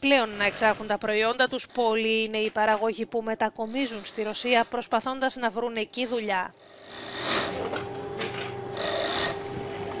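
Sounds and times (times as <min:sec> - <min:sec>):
rasping stitching burst: 0:06.6 - 0:07.7, 0:08.8 - 0:09.8
sewing machines humming: 0:06.6 - 0:10.0.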